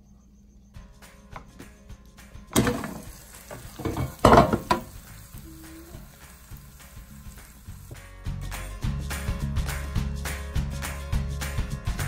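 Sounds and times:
background music: 0:00.8 - 0:12.0
air fryer basket scraping: 0:02.5 - 0:04.9
pork chops sizzling: 0:02.5 - 0:08.0.

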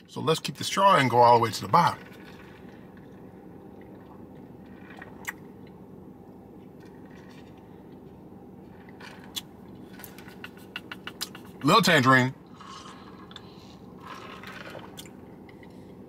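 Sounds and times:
steady low hum: 0:00.0 - 0:16.0
sipping through a straw: 0:12.6 - 0:15.1.

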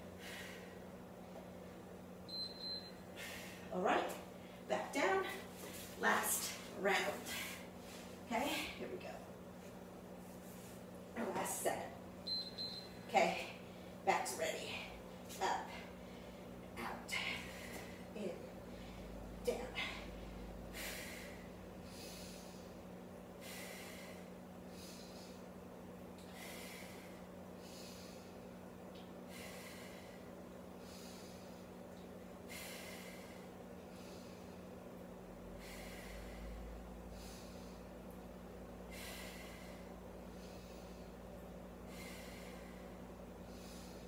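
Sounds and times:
woman breathing heavily: 0:00.0 - 0:01.2, 0:03.0 - 0:09.0, 0:14.6 - 0:44.0
steady low hum: 0:00.0 - 0:44.0
short high-pitched electronic beeps: 0:12.3 - 0:12.9.

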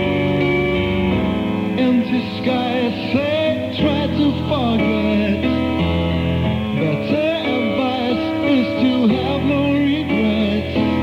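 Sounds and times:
guitar: 0:00.0 - 0:11.0
sustained keyboard chords: 0:00.0 - 0:11.0
man singing: 0:01.7 - 0:05.9, 0:06.7 - 0:11.0.

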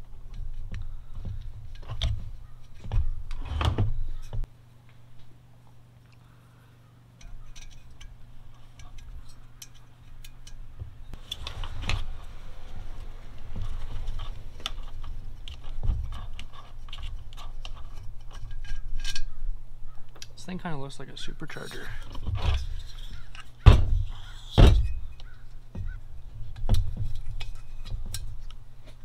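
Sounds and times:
metal and plastic parts rattling: 0:07.2 - 0:12.2, 0:12.9 - 0:19.4, 0:21.5 - 0:29.0.

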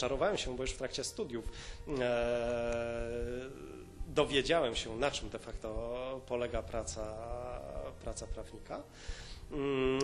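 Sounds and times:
man's drawn-out hesitation vowel: 0:01.9 - 0:04.2, 0:09.5 - 0:10.0.

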